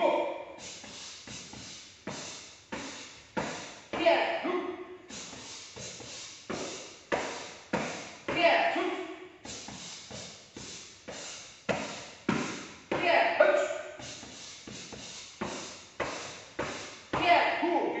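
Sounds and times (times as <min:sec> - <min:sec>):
person calling out: 0:00.0 - 0:00.3, 0:04.0 - 0:04.7, 0:08.3 - 0:09.0, 0:13.0 - 0:13.8, 0:17.2 - 0:18.0.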